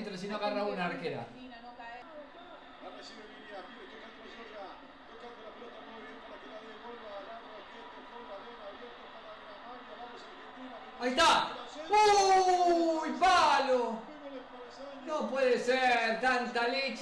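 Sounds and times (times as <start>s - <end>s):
football commentary on television: 0.0s - 17.0s.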